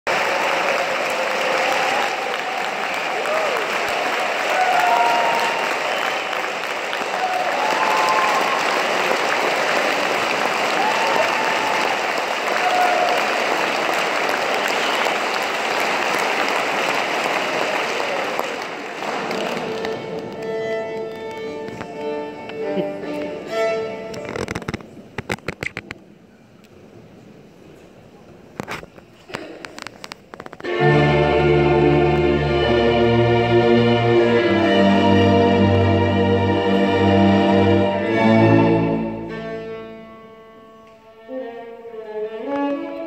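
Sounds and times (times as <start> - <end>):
audience applause: 0.0 - 21.8.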